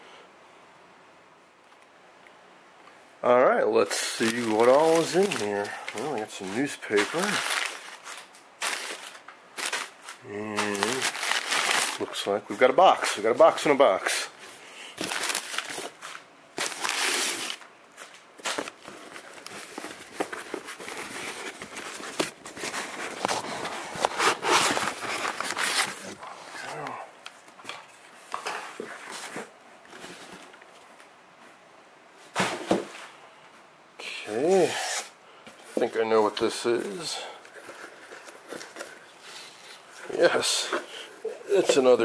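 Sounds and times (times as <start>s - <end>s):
newspaper rustling and crinkling: 3.8s - 31.1s, 35.5s - 42.0s.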